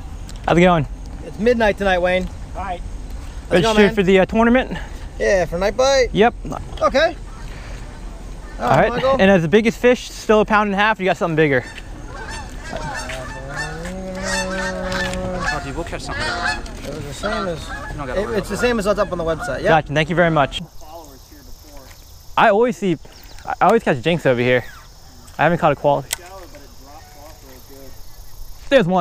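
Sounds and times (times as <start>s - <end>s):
geese honking: 7.2s - 9.4s, 10.5s - 20.6s
sharp click: 26.0s - 26.6s.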